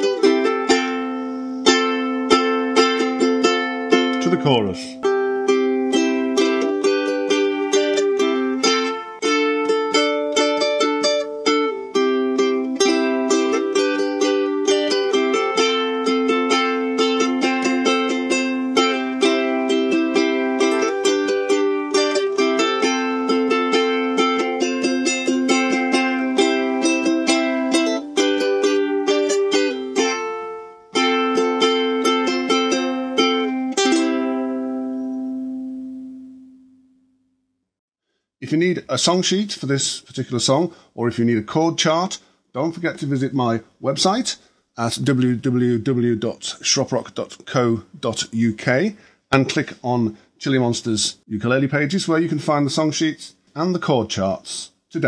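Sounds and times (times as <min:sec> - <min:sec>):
ukulele strumming: 0:00.0 - 0:36.7, 0:49.4 - 0:49.8.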